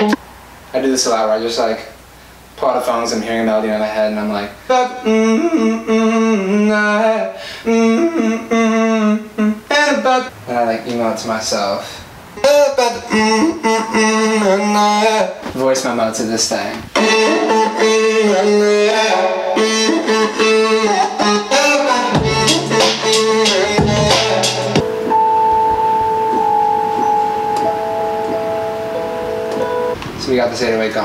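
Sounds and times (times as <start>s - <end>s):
man singing wordless melody: 3.1s - 10.3s, 12.4s - 15.5s, 16.8s - 24.8s
synthesizer sustained chords: 22.1s - 30.0s.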